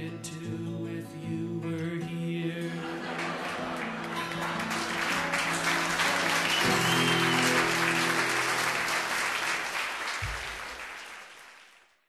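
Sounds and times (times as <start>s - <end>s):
acoustic guitar chords: 0.0s - 9.0s
audience applause: 3.0s - 12.0s.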